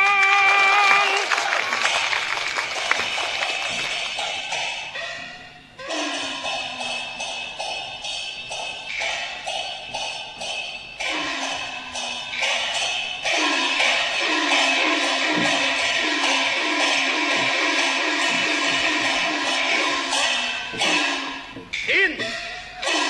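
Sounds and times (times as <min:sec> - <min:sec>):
opera percussion strikes: 0:00.0 - 0:23.0.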